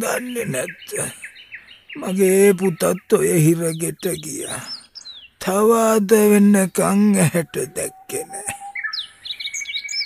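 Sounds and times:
person speaking: 0.0s - 1.2s, 2.0s - 4.8s, 5.4s - 8.6s
birds chirping: 0.0s - 10.0s.

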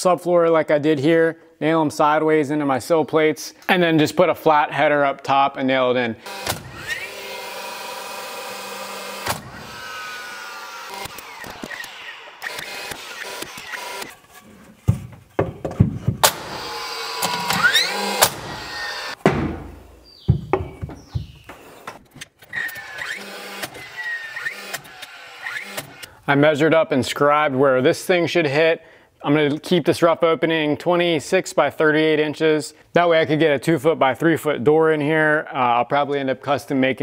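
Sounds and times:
sharp nail shots: 6.2s - 14.1s, 16.2s - 20.0s
nailer motor whirring: 6.2s - 14.2s, 16.2s - 19.2s, 21.0s - 26.1s
boards knocking: 14.7s - 16.6s, 19.2s - 22.0s.

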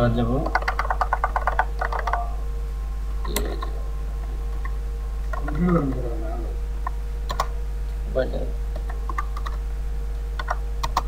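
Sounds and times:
steady electrical hum: 0.0s - 11.0s
computer keyboard keystrokes: 0.4s - 2.3s, 7.3s - 7.5s, 8.8s - 9.6s, 10.4s - 11.0s
brief vocal sound: 5.4s - 6.6s.

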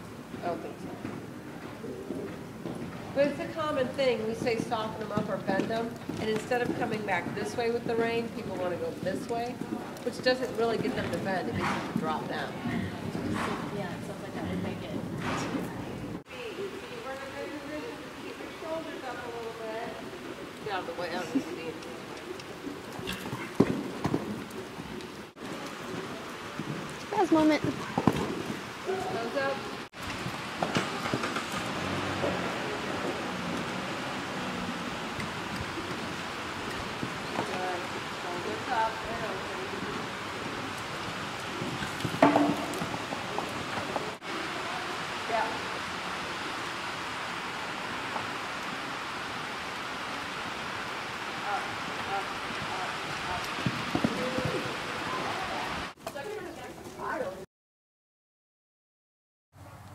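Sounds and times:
horse hooves thudding: 0.0s - 16.2s, 16.8s - 57.3s
steady hiss: 16.3s - 56.0s.

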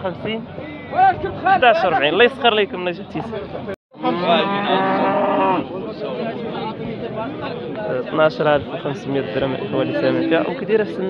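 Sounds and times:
cow mooing: 4.0s - 5.7s.

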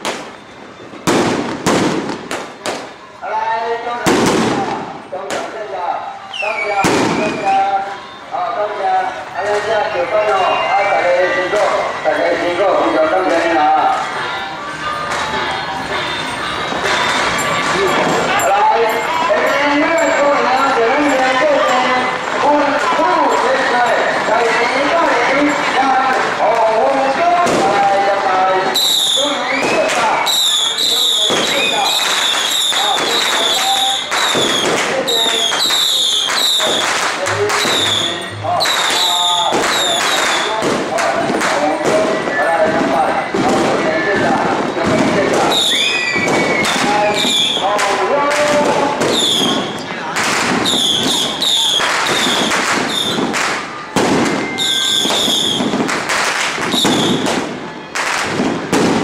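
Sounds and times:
crowd voices: 0.0s - 59.0s
firecrackers banging: 0.0s - 59.0s.

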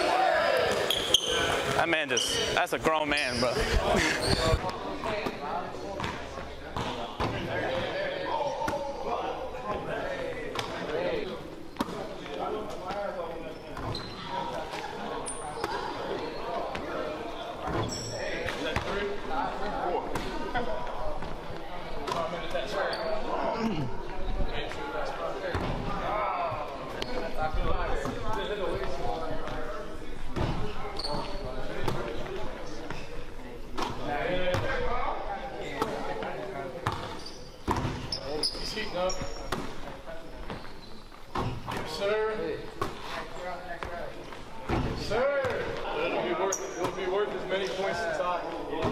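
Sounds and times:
indistinct voices chatting: 0.0s - 5.1s
chatter of voices: 0.0s - 48.9s
high squeaks: 37.2s - 39.5s.

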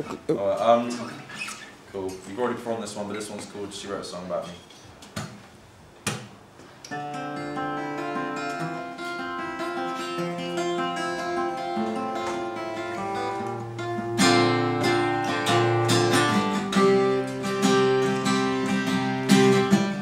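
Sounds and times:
acoustic guitars playing: 0.0s - 2.6s, 6.7s - 20.0s.

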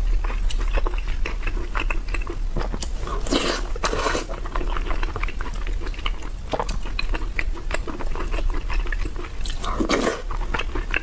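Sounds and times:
wet chewing clicks and smacks: 0.0s - 3.0s, 4.3s - 11.0s.

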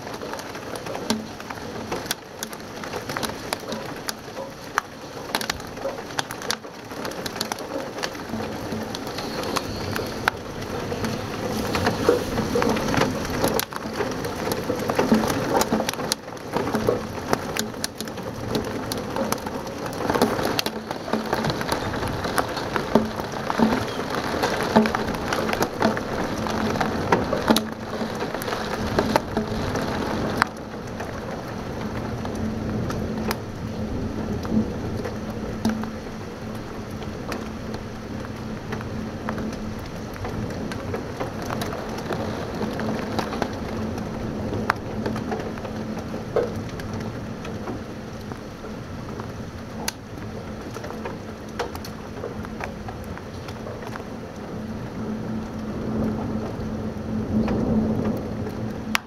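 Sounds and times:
heavy rain on a window: 0.0s - 59.0s.

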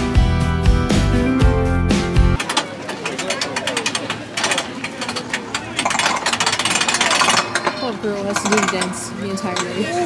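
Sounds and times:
fast rattling clatter: 2.4s - 9.9s
people's voices: 2.4s - 10.0s.

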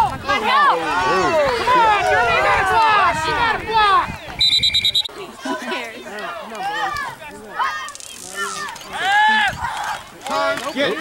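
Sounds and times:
spectators cheering and shouting: 0.0s - 11.0s
referee's whistle trill: 4.4s - 5.2s.

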